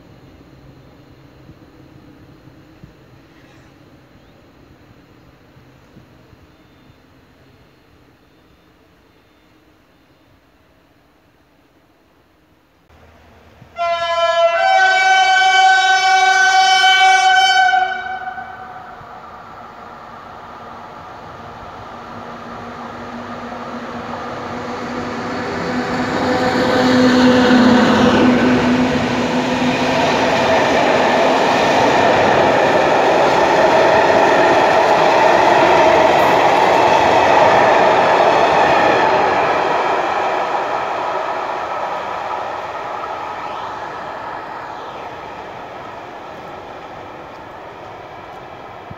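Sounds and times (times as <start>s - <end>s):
electric locomotive passing: 0.0s - 48.9s
train horn: 13.6s - 19.1s, 25.0s - 30.3s
coaches rolling on rails: 15.2s - 48.9s.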